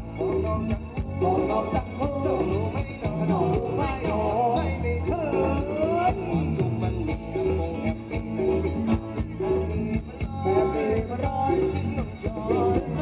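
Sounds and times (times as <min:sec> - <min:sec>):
live band dance music: 0:00.0 - 0:13.0
person singing: 0:00.0 - 0:13.0.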